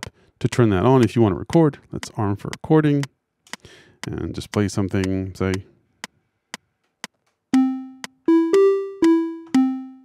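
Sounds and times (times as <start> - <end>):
metronome ticking: 4.0 - 5.6, 7.5 - 10.0
synth playing notes: 7.6 - 10.0.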